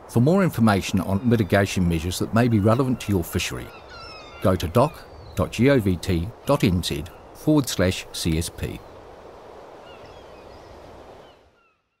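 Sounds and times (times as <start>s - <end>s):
surf and wind: 0.0s - 11.6s
faint bird cries: 2.6s - 5.4s, 9.8s - 12.0s.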